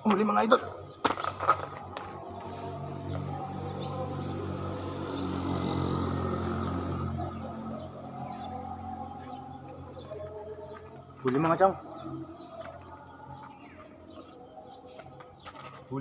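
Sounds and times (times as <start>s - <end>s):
background music sustained chords: 0.0s - 16.0s.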